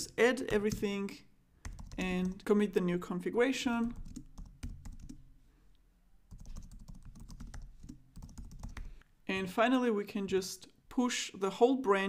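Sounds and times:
typing on computer keyboard: 1.6s - 2.4s, 3.8s - 5.2s, 6.3s - 9.0s.

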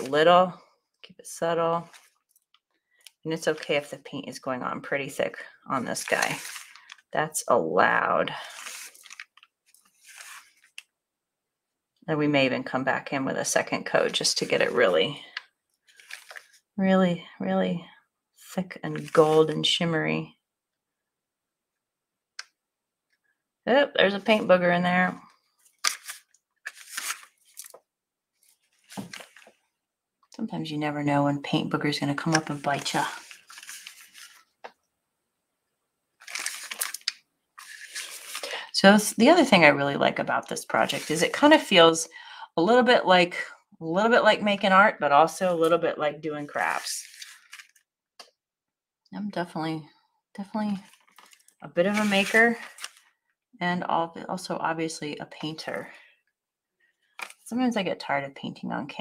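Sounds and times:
paintbrush scratchy rustling: 6.0s - 7.0s, 8.4s - 10.7s, 32.4s - 34.6s.

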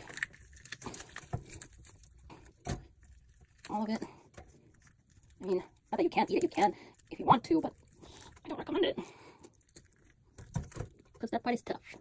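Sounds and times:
wet squelching: 0.0s - 11.3s.

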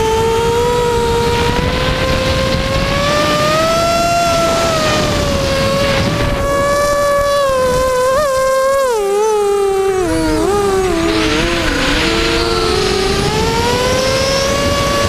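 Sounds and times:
model aircraft motor whine: 0.0s - 15.0s
rushing air: 0.0s - 15.0s.

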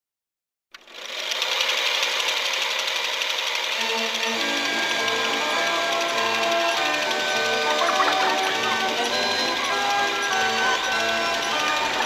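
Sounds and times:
film projector clattering: 0.8s - 12.0s
low song notes: 5.5s - 9.7s.

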